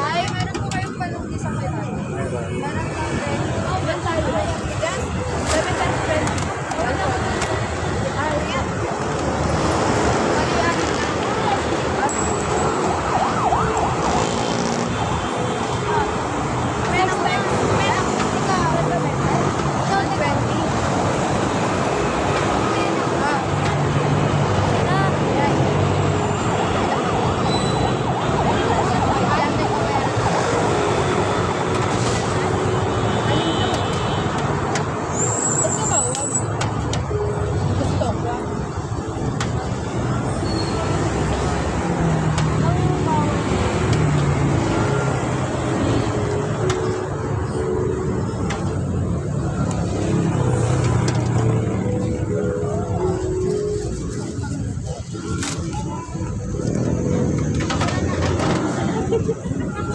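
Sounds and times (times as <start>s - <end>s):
people's voices: 0.0s - 59.9s
street traffic: 0.0s - 59.9s.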